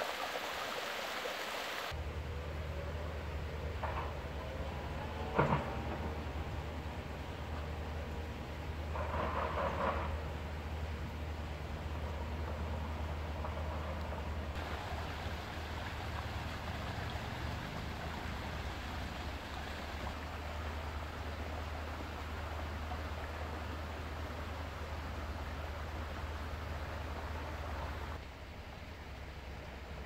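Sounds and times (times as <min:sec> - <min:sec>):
brook running over stones: 0:00.0 - 0:02.0, 0:10.1 - 0:28.2.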